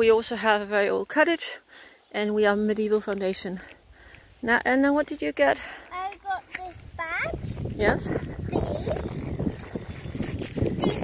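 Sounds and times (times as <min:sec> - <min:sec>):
wind noise on microphone: 0:06.5 - 0:11.0.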